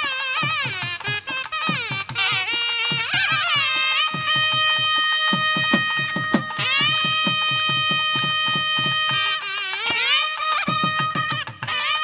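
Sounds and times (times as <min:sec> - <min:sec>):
nadaswaram holding a long note: 0:00.0 - 0:12.0
quick drum strokes: 0:00.0 - 0:12.0.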